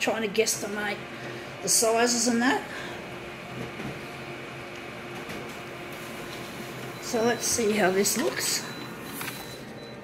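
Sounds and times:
photocopier running: 0.0s - 10.0s.

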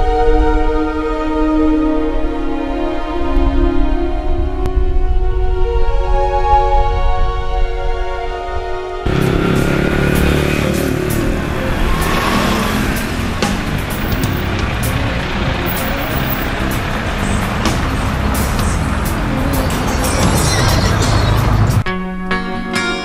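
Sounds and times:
car engines and tyres passing: 9.0s - 21.8s
heavy low rumble: 9.1s - 21.8s.

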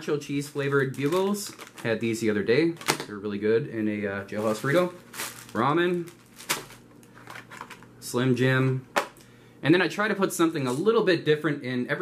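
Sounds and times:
plastic bag set down: 4.4s - 7.8s.

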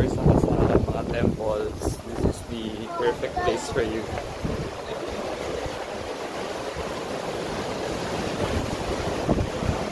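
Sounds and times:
sea waves washing over rocks: 0.0s - 9.9s
wind buffeting microphone: 0.0s - 9.9s.

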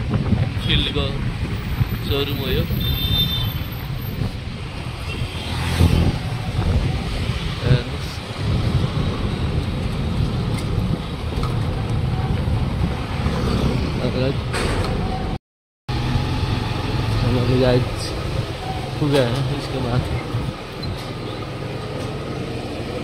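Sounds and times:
wind rumble on microphone: 0.0s - 15.4s, 17.0s - 23.0s.

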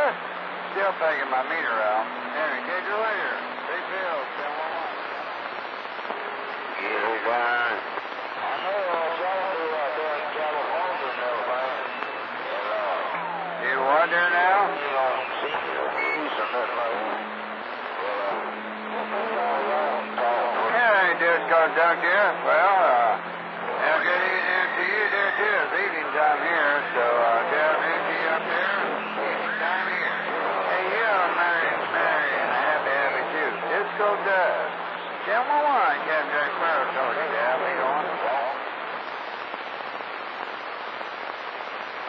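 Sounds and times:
radio static hiss: 0.0s - 42.0s
voices over cb radio speaker: 0.0s - 42.0s.

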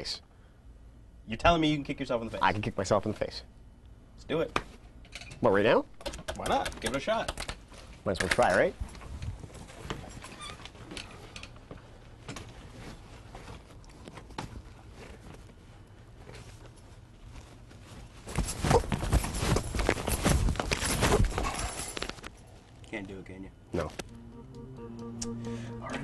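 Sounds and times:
rapid foot thuds and scrapes: 17.8s - 22.3s.

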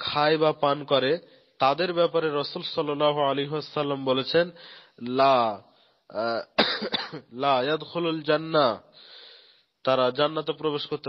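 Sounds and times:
man speaking: 0.0s - 8.9s, 9.8s - 11.0s
man clearing throat: 6.4s - 7.3s.

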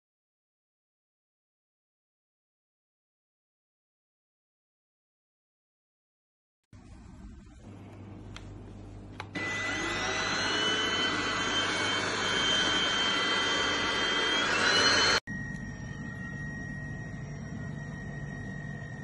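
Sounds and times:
quiet steady hum: 6.8s - 9.4s
vacuum cleaner running: 7.5s - 19.0s.

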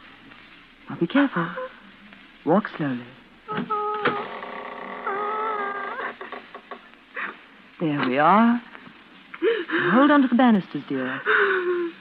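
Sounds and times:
door creaking open: 3.5s - 6.9s.

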